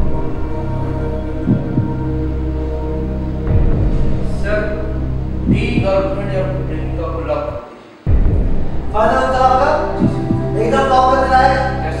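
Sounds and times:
droning suspense chord: 0.0s - 12.0s
heartbeat-like thump: 1.5s - 2.0s, 3.5s - 4.4s, 5.5s - 6.0s, 8.1s - 9.0s, 9.9s - 10.6s.

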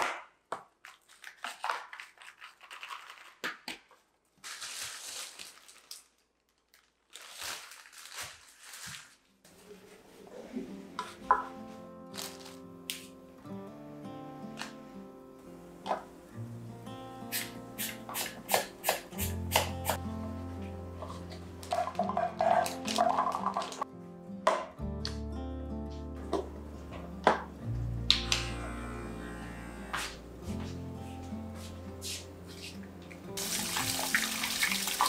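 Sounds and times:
soft background music: 10.0s - 35.0s.

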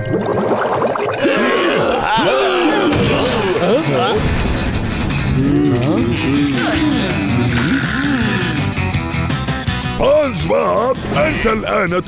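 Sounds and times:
background music: 0.0s - 12.0s
cartoon voices grunting and groaning: 1.2s - 4.2s, 5.4s - 8.9s.

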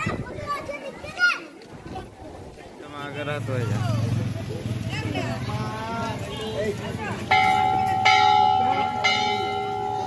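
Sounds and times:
metal temple bell ringing: 7.3s - 10.0s.

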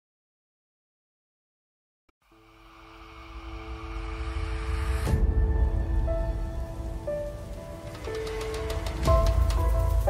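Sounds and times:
rising whoosh: 2.4s - 7.0s.

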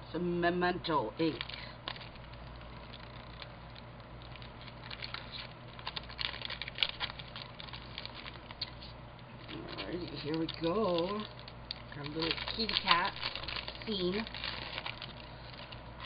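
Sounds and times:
low steady hum: 0.0s - 16.0s
plastic packaging crinkling: 1.2s - 16.0s.

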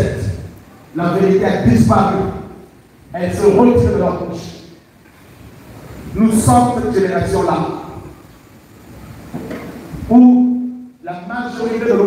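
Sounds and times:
crowded hall background noise: 0.0s - 12.0s.

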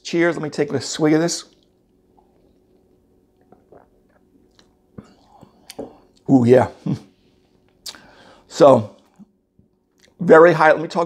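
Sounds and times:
small mouth clicks: 1.5s - 6.3s
man swallowing: 3.3s - 7.0s.

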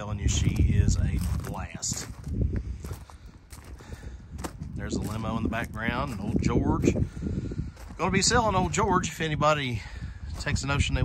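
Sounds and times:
footsteps on gravel: 0.0s - 11.0s.

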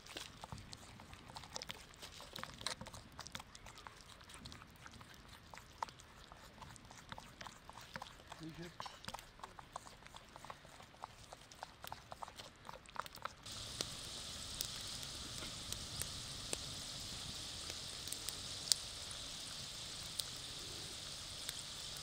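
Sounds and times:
wooden spoon squelching salsa: 0.0s - 22.0s
chips sizzling in hot oil: 13.4s - 22.0s.

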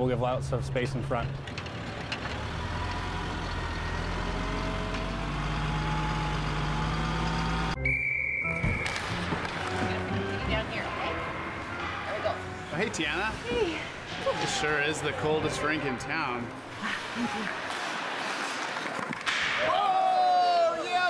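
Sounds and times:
truck engine droning: 0.6s - 7.8s
plow blade pushing snow: 1.4s - 7.8s
hockey sticks and skates on ice: 8.7s - 10.2s, 13.4s - 21.0s
crowd voices: 9.6s - 18.7s.

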